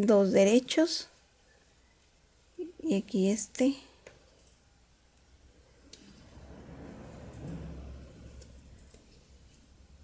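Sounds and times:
low rumble: 5.4 - 10.0.

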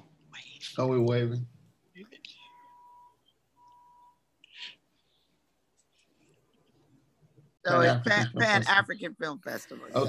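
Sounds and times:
faint electronic beep: 2.3 - 4.7.

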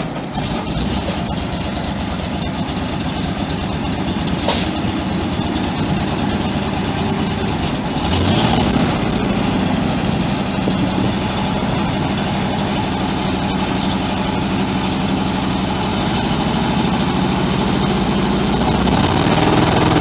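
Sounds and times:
truck engine idling: 0.0 - 20.0.

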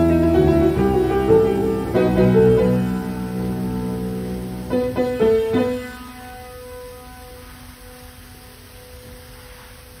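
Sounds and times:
piano chord ringing: 0.0 - 9.2.

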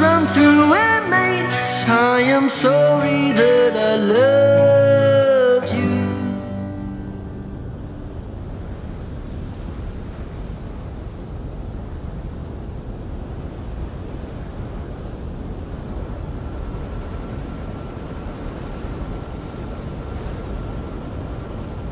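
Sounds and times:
faint high whine: 0.0 - 21.9
low rumbling ambient noise: 0.0 - 21.9
fluttering high chirring: 15.9 - 21.9.

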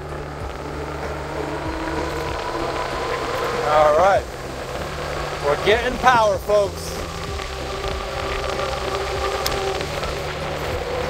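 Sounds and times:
electric motor whining: 0.0 - 11.0
road and wind noise: 0.0 - 11.0.

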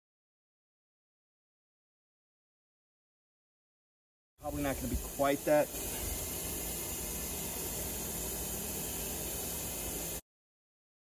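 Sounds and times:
steady hiss: 4.4 - 10.2.

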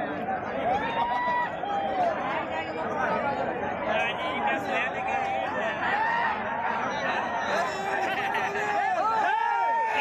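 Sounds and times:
crowd of men talking: 0.0 - 10.0.

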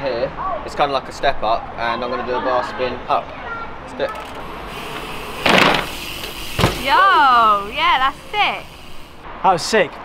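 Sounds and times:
bicycle rolling: 4.0 - 9.3
tyres rushing over ramp: 4.2 - 9.2.

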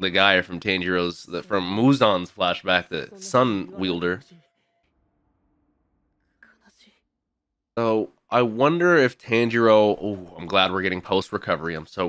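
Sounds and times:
faint whispered voice: 1.1 - 4.4.

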